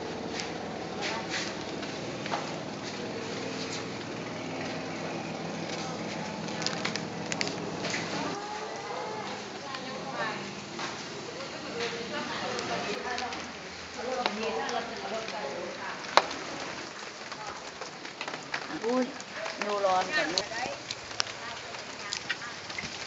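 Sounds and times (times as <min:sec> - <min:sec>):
steady low hum: 0:00.0 - 0:08.4
people talking in background: 0:00.9 - 0:22.8.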